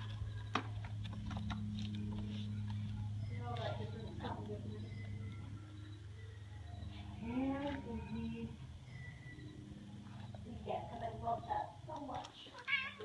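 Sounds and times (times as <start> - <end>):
steady low hum: 0.0 - 12.4
cat meowing: 12.5 - 13.0.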